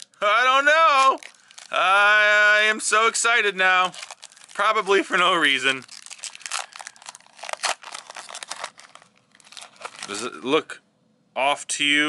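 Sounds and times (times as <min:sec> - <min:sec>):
foil wrapper tearing and crinkling: 0:00.9 - 0:01.8, 0:03.8 - 0:10.4.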